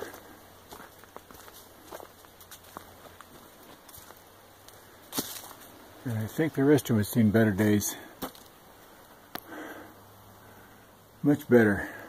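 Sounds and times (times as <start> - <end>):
footsteps crunching on trail: 0.0 - 6.8, 7.4 - 9.5.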